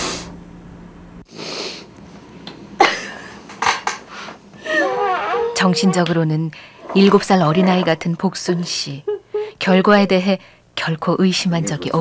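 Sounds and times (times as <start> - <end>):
woman crying: 4.6 - 10.0.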